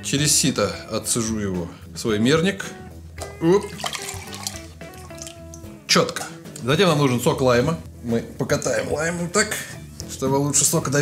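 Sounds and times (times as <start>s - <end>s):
background music: 0.0s - 11.0s
juice trickling through a sieve: 3.2s - 5.6s.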